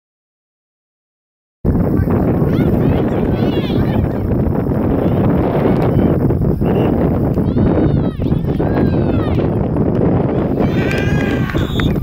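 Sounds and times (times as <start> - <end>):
wind rumble: 1.7 - 12.0
person shouting: 10.5 - 11.8.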